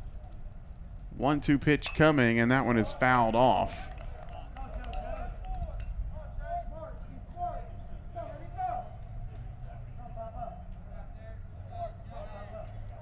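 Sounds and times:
faint indistinct voices: 4.0s - 13.0s.

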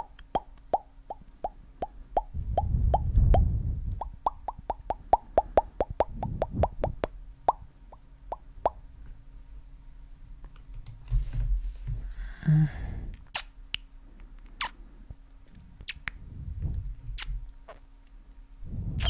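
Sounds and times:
low rumble: 2.3s - 4.9s, 16.1s - 17.6s.

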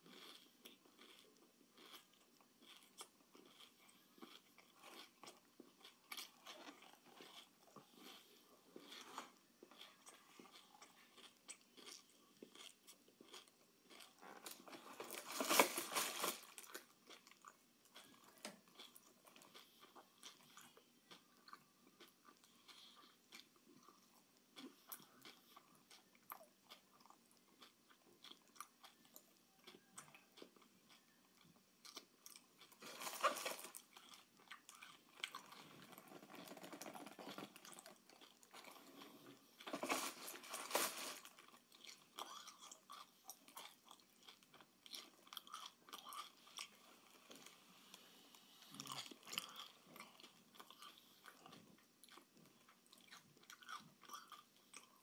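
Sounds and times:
person chewing: 0.0s - 55.0s
snack packaging rustling: 13.3s - 17.0s, 32.6s - 42.8s.

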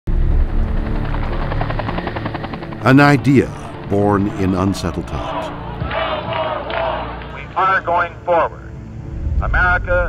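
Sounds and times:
helicopter rotors beating: 0.1s - 7.2s
music: 0.1s - 10.0s.

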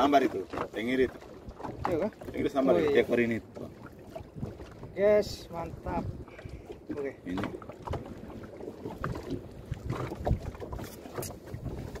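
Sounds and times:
wind on microphone: 3.6s - 12.0s.

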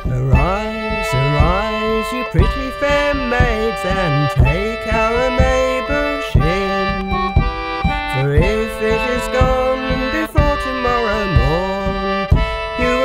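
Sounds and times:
folk instrumental music: 0.0s - 13.0s.

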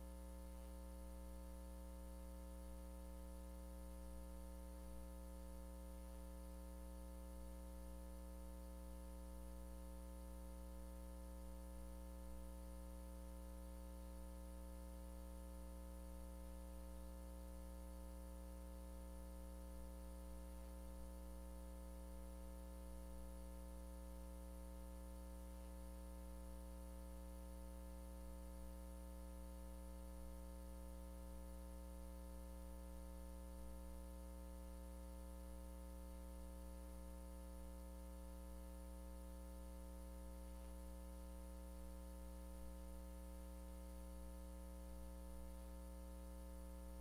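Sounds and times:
faint electrical hum: 0.0s - 47.0s.

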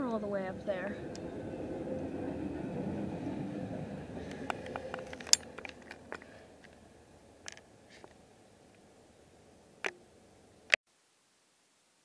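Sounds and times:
freight train rumbling past: 0.0s - 7.4s
sharp clicks and knocks: 4.3s - 6.8s.

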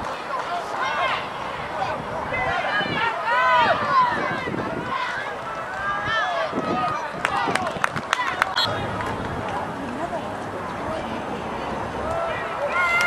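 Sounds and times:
crowd shouting and cheering: 0.0s - 13.0s.

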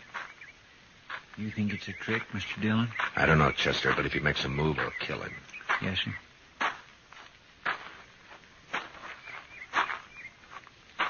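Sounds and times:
man's footsteps walking slowly: 0.0s - 11.0s.

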